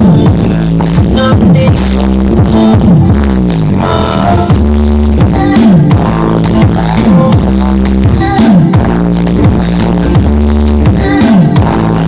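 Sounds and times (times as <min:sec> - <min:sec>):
bass-heavy music on speaker: 0:00.0 - 0:12.0
sliding deep bass notes: 0:00.0 - 0:12.0.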